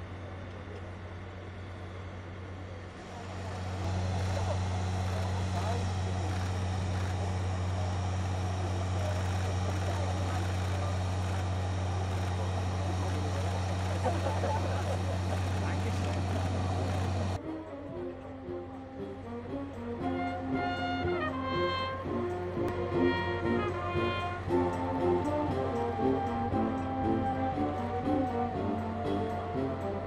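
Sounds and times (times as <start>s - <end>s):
helicopter drone: 0.0s - 30.0s.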